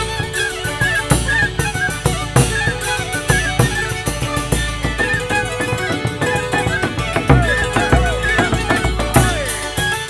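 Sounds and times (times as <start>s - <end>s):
fiddle: 0.0s - 10.0s
folk band playing dance tune: 0.0s - 10.0s
hammered dulcimer: 0.0s - 10.0s
wooden flute: 0.0s - 10.0s
bass drum and cymbal beat: 1.1s - 10.0s.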